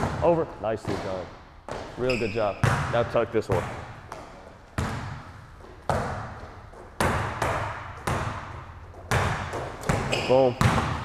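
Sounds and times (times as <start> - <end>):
basketball bouncing in gym: 0.0 - 11.0.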